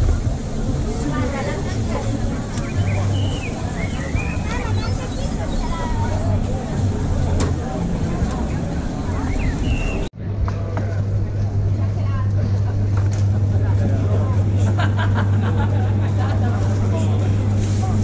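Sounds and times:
background voices and bustle: 0.0 - 18.0
low mechanical hum: 0.0 - 18.0.

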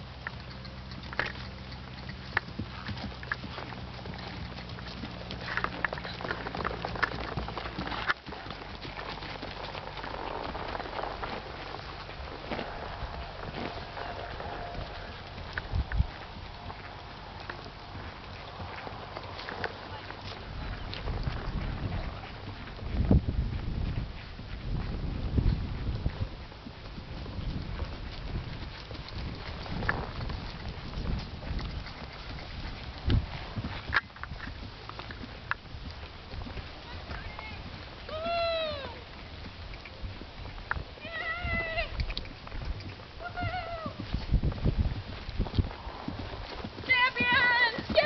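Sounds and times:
horse hoofbeats on grass: 0.0 - 48.0.

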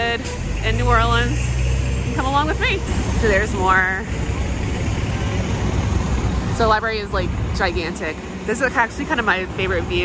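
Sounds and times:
busy street traffic rumble: 0.0 - 10.0.

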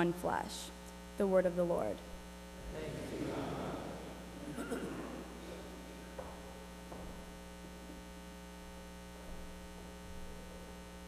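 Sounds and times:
electrical mains hum: 0.0 - 11.0
faint knocks: 4.7 - 7.4.

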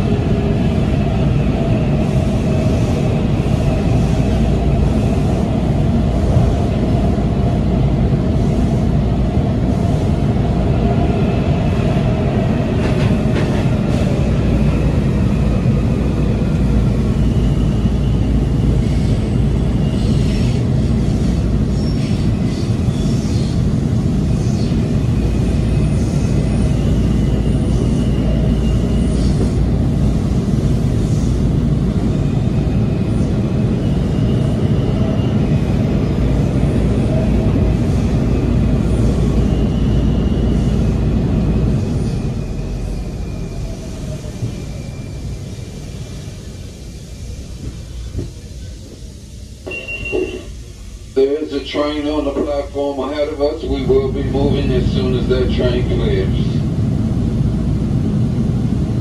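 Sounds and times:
falling train whine: 0.0 - 59.0
train wheel-on-rail rumble: 0.0 - 59.0
high-pitched tones: 49.7 - 50.6.

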